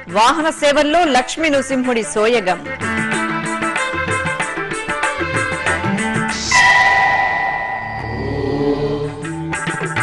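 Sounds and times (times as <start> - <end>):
low drone: 6.3 - 9.3
held vocal note: 6.3 - 9.5
bell-like tone: 6.4 - 9.3.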